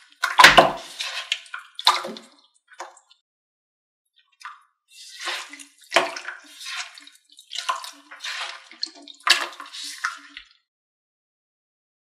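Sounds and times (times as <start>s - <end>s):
slime squelching: 0.0s - 3.1s, 4.3s - 10.5s.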